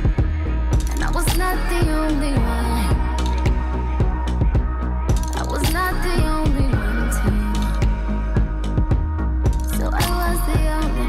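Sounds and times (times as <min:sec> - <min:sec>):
background music with steady beat: 0:00.0 - 0:11.0
heavy bass line: 0:00.0 - 0:11.0.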